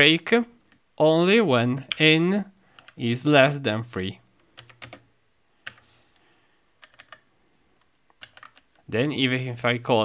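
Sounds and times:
computer keyboard key clicks: 4.6s - 5.0s, 6.8s - 7.2s, 8.2s - 8.7s.

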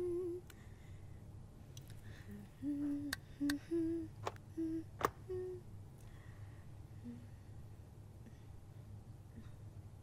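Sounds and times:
person humming: 0.0s - 0.6s, 2.1s - 5.7s, 7.0s - 7.4s.

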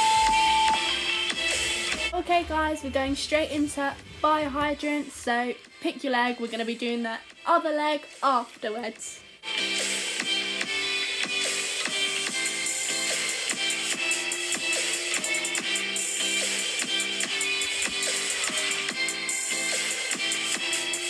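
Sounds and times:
electronic music with steady beat: 0.0s - 6.5s, 9.3s - 21.0s.

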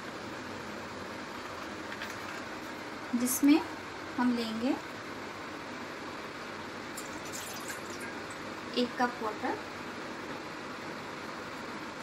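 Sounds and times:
water trickling into cup: 7.0s - 8.4s.

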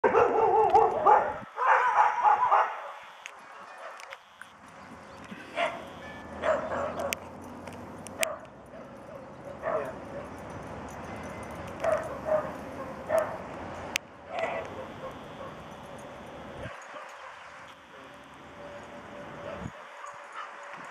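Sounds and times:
dogs barking and yipping: 0.0s - 20.9s.

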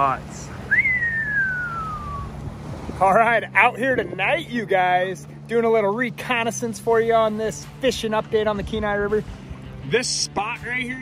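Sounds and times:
outboard motor humming: 0.0s - 11.0s
falling whistle: 0.7s - 2.3s.

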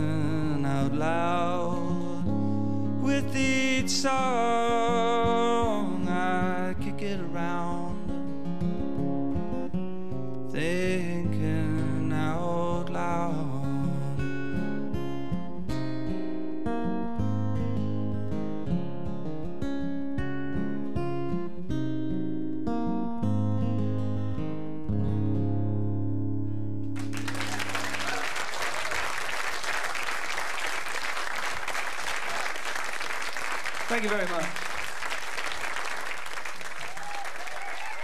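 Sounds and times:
acoustic guitar playing: 0.0s - 36.8s
audience applause: 27.0s - 38.0s.

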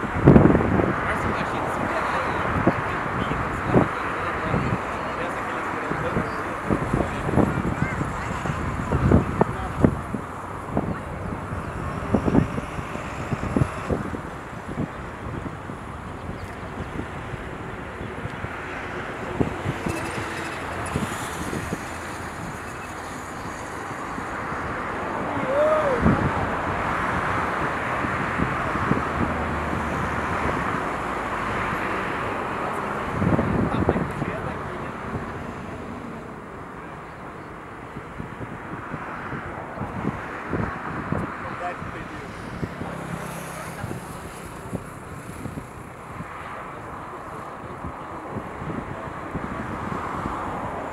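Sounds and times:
distant jet noise: 0.0s - 50.9s
wind buffeting microphone: 0.0s - 50.9s.

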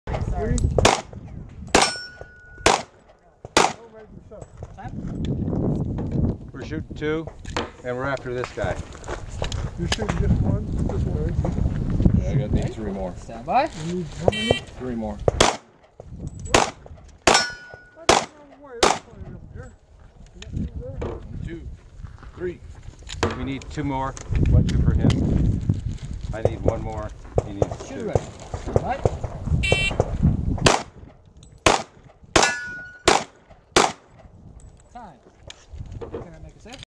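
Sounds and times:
pistol shots: 0.8s - 1.1s, 1.7s - 3.9s, 15.4s - 15.7s, 16.5s - 19.1s, 30.6s - 30.9s, 31.6s - 34.2s
steel target ringing: 1.8s - 2.7s, 17.3s - 18.0s, 32.4s - 33.1s.

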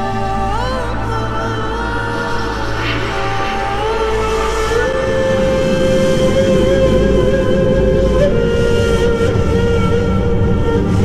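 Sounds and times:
low drone: 0.0s - 11.0s
reed flute long note: 0.0s - 11.0s.

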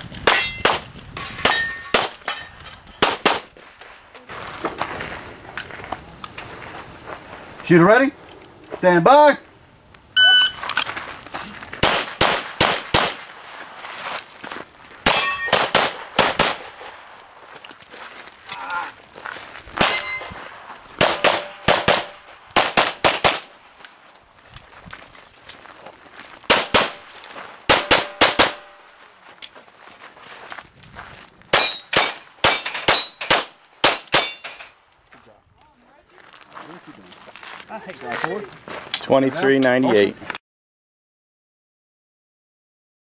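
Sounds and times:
rapid pistol fire: 3.0s - 3.5s, 11.8s - 13.3s, 15.5s - 16.8s, 21.0s - 23.6s, 26.5s - 27.0s, 27.7s - 28.7s
metallic ringing tone: 10.2s - 10.6s, 19.9s - 20.4s.

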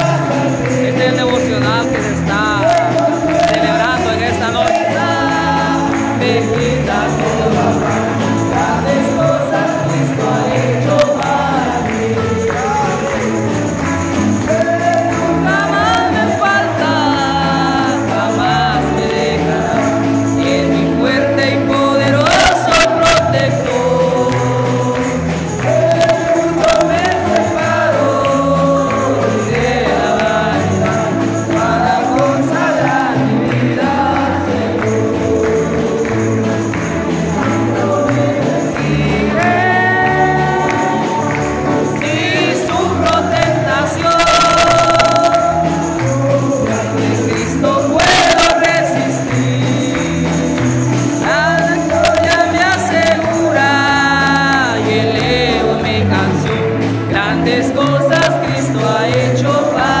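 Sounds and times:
amplified band: 0.0s - 60.0s
men singing a hymn: 0.0s - 60.0s.

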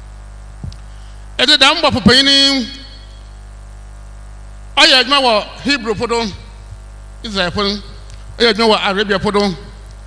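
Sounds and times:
electrical mains hum: 0.0s - 10.0s
man speaking: 1.4s - 3.0s, 4.8s - 6.6s, 7.2s - 9.8s.

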